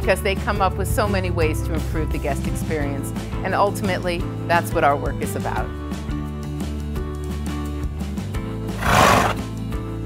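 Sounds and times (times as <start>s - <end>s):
horse whinny sound effect: 8.8s - 9.4s.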